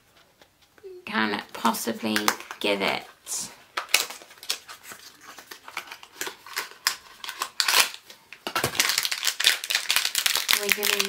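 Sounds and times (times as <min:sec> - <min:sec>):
plastic bag crinkling: 0:03.7 - 0:11.0.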